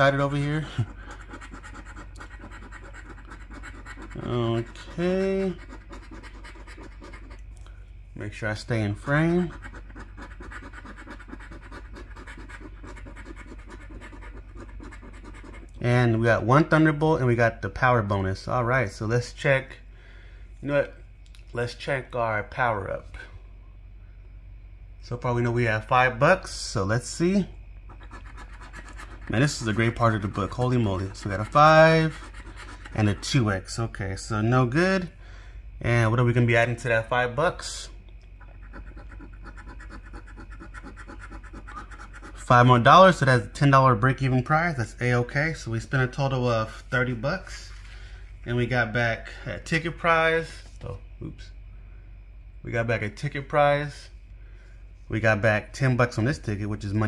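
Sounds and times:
coin scratching lottery ticket: 0.0 - 7.4, 8.8 - 15.8, 27.9 - 33.5, 38.4 - 42.6.

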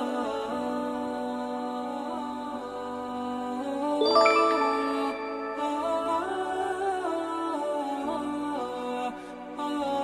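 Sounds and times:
wordless vocal melody: 0.0 - 10.0.

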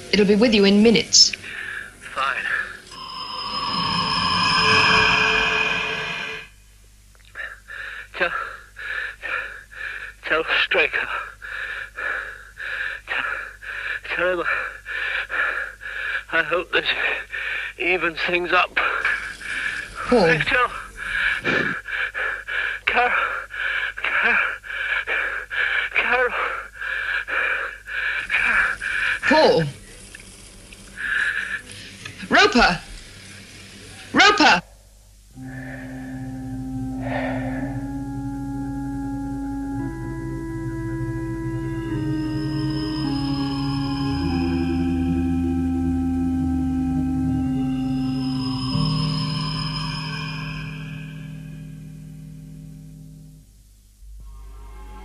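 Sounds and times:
electronic sound effect: 2.9 - 6.6, 35.4 - 39.8, 47.6 - 53.2.

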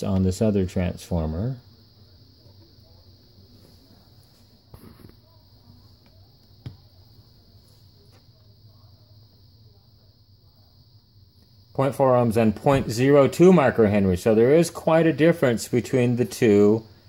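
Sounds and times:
low hum and hiss: 0.0 - 17.0.

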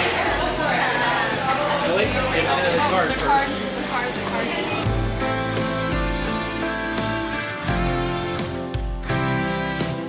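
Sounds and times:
guitar music with bass line: 0.0 - 10.0.

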